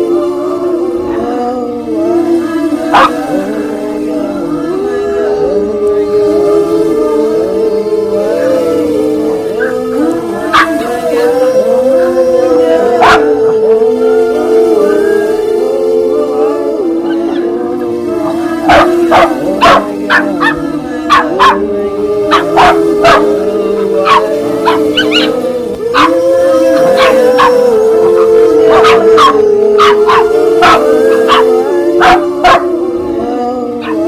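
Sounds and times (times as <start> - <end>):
background music with held notes: 0.0 - 34.0
dogs barking and yipping: 2.9 - 3.2, 9.5 - 11.4, 12.8 - 13.5, 18.2 - 21.7, 22.3 - 32.7, 33.8 - 34.0.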